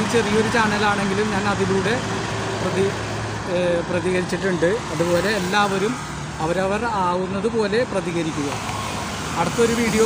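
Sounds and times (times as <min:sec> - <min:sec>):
man speaking: 0:00.0 - 0:08.6, 0:09.4 - 0:10.0
road traffic hum: 0:00.0 - 0:10.0.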